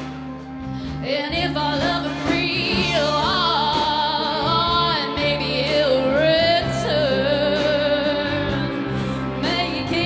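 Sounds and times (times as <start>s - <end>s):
live rock band: 0.0s - 10.0s
woman singing: 0.9s - 10.0s.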